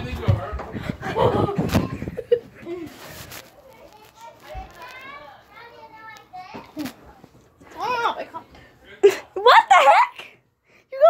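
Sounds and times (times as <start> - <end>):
children chattering: 1.0 - 8.4.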